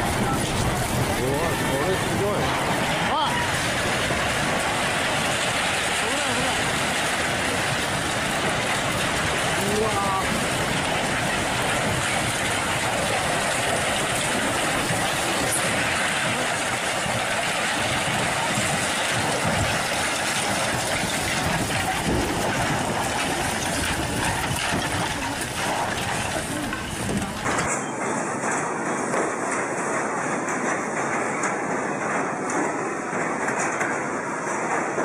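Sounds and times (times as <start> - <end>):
earthquake rumbling and clatter: 0.0 - 35.0
walls and roof tiles crashing: 0.0 - 35.0
heavy thumps of falling debris: 2.4 - 35.0.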